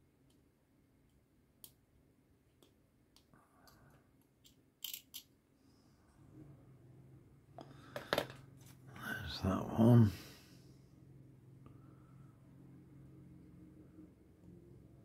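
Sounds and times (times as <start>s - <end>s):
plastic parts clicking: 4.2s - 5.3s.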